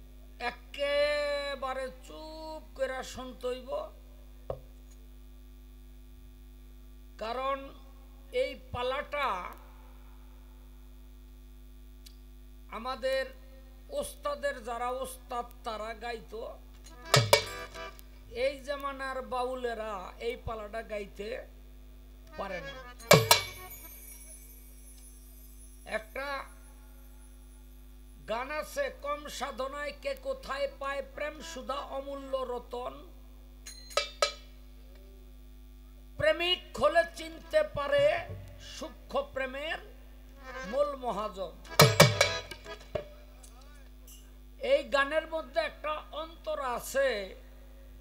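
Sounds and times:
electrical mains hum: 0:00.0 - 0:48.0
man speaking into a microphone: 0:00.4 - 0:04.0, 0:07.2 - 0:09.6, 0:12.7 - 0:16.6, 0:18.3 - 0:21.5, 0:28.2 - 0:33.1, 0:36.2 - 0:39.9, 0:40.6 - 0:41.7, 0:44.6 - 0:47.4
ringing metallic strikes: 0:16.9 - 0:18.0, 0:23.0 - 0:25.9, 0:33.7 - 0:34.5, 0:41.7 - 0:43.2
man's voice: 0:36.2 - 0:39.8.

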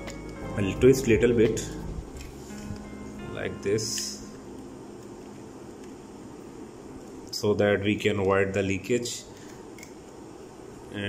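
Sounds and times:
faint room tone hiss: 0:00.0 - 0:11.0.

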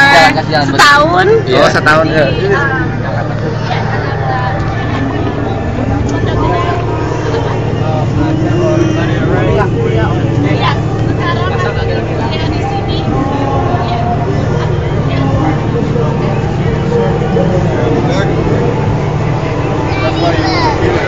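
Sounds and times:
people talking indistinctly: 0:00.0 - 0:21.0
steady low hum: 0:00.0 - 0:21.0.

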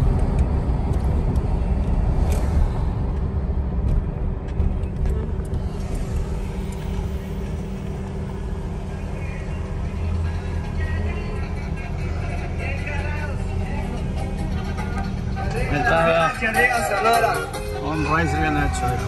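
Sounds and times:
car engine and road rumble: 0:00.0 - 0:19.0.

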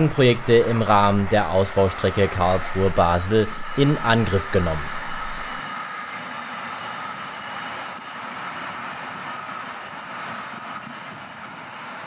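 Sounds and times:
faint high whine: 0:00.0 - 0:11.9
train wheels on rail: 0:00.0 - 0:12.0.

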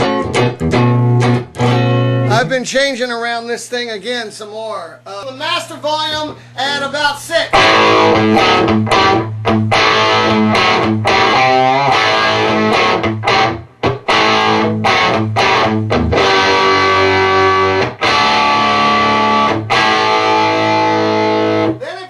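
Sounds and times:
distorted electric guitar chords: 0:00.0 - 0:02.5, 0:07.5 - 0:21.8.

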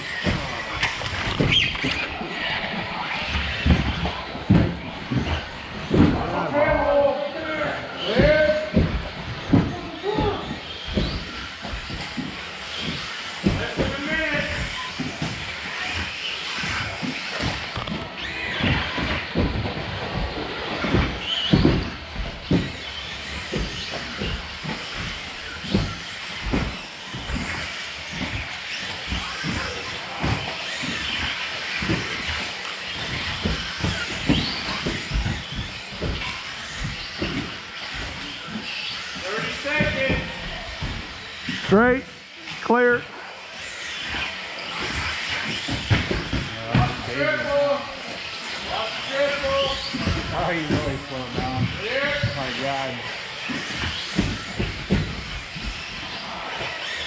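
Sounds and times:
rc cars knocking on landings: 0:00.0 - 0:57.0
rc cars whirring: 0:00.0 - 0:57.0.

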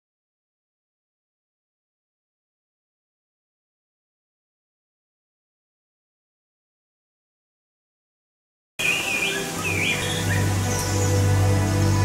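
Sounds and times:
background music with low drone: 0:08.8 - 0:12.0.

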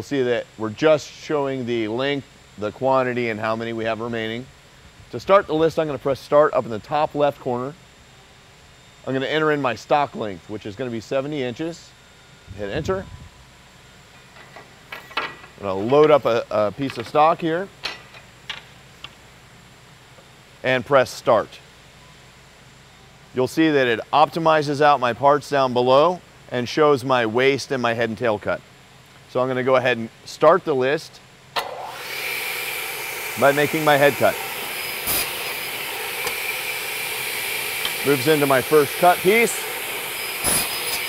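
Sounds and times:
faint high whine: 0:00.0 - 0:41.0
shop machinery hiss: 0:31.6 - 0:41.0.

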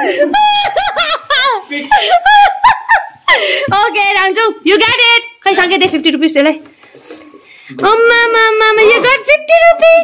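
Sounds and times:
people laughing and giggling: 0:00.0 - 0:03.7.

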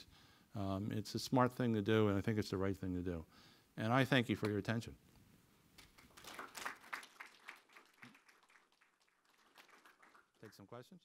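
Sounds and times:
faint sparse applause: 0:05.8 - 0:11.0.

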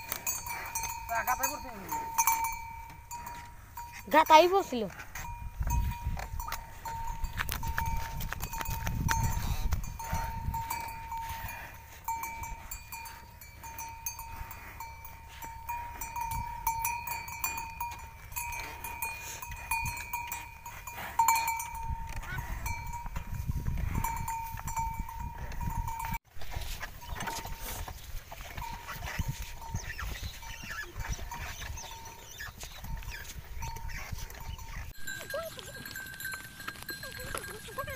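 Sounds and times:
steady ringing tone: 0:00.0 - 0:26.2.

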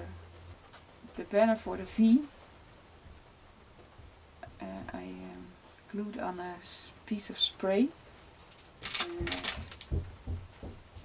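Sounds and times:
craft materials rustling: 0:08.2 - 0:10.0
soft low bump: 0:09.2 - 0:11.0.

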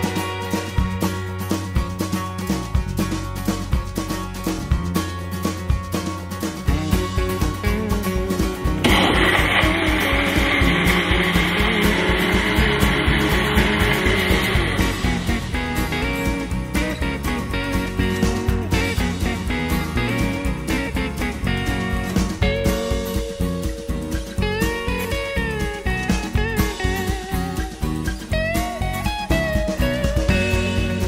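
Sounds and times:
instrumental music with steady beat: 0:00.0 - 0:31.0
plucked guitar notes: 0:06.5 - 0:31.0.

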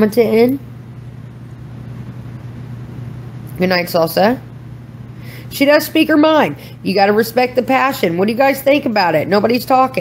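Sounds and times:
steady low hum with hiss: 0:00.0 - 0:10.0.

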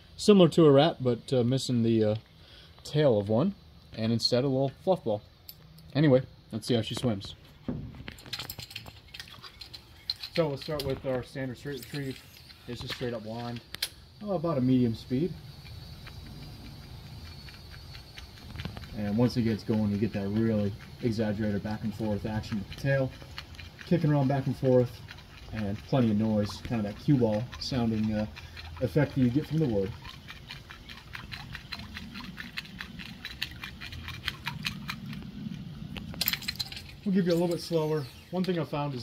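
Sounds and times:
low background rumble: 0:12.5 - 0:37.2
fishing reel cranking: 0:36.2 - 0:38.8.

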